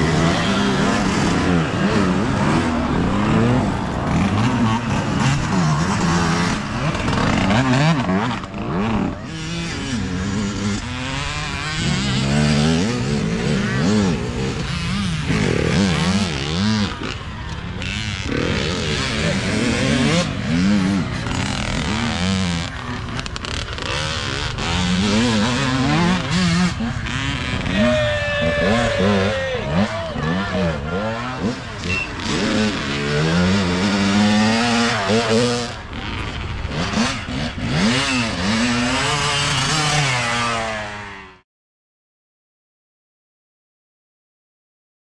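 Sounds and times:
voices: 0:00.0 - 0:40.8
dirt bike engines revving: 0:00.0 - 0:41.4.

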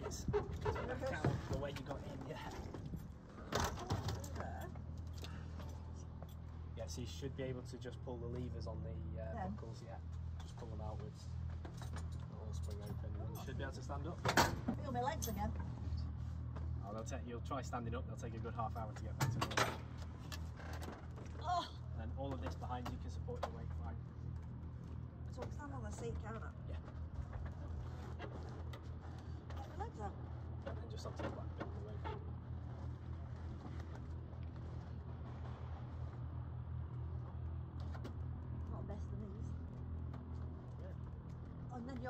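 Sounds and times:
low engine hum: 0:00.0 - 0:42.0.

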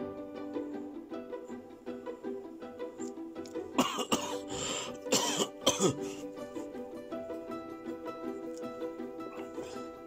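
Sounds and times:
music with plucked strings: 0:00.0 - 0:10.0
person clearing throat: 0:03.8 - 0:04.4, 0:05.1 - 0:06.1
person coughing: 0:03.8 - 0:04.4, 0:05.1 - 0:06.2.

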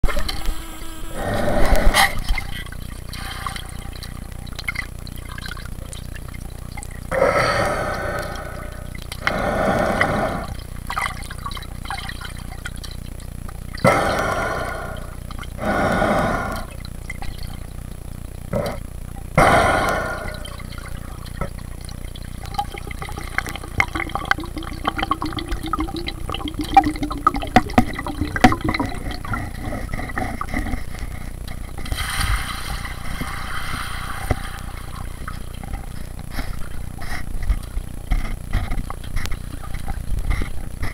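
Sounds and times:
faint low hum: 0:00.0 - 0:40.9
muffled underwater water sounds: 0:00.0 - 0:40.9.

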